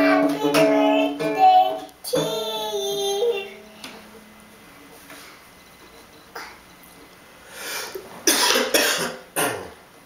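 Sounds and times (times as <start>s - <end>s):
young child coughing: 8.3s - 9.7s.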